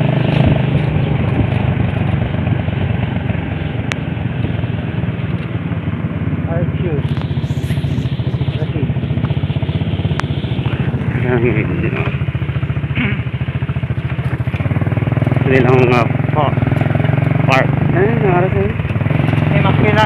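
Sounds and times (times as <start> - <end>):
motorcycle engine running: 0.0 - 20.0
person's voice: 7.4 - 8.1.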